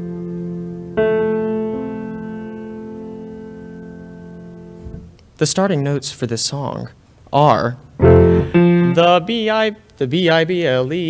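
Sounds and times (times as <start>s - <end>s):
piano chord ringing: 0.0s - 5.1s, 8.0s - 9.2s.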